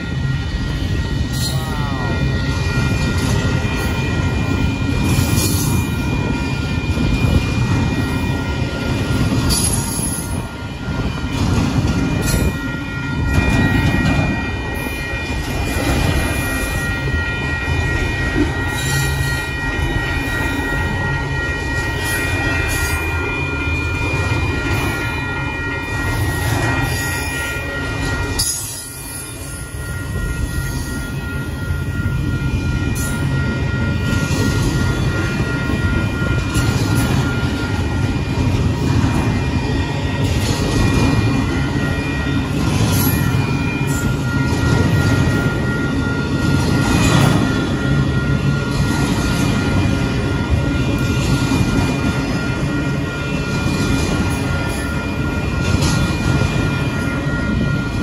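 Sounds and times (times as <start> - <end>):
freight train rumbling on rails: 0.0 - 58.0.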